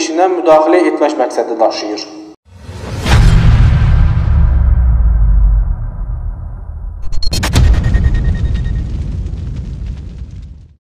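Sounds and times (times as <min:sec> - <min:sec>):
low rumbling cinematic boom: 0:02.6 - 0:10.8.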